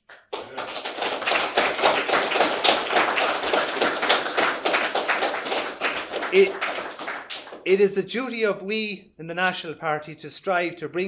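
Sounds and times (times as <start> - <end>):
audience applause: 0.0 - 7.7.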